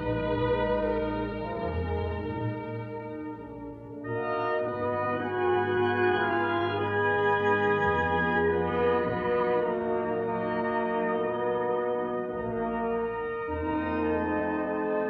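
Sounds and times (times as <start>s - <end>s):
orchestral music with horns: 0.0s - 15.0s.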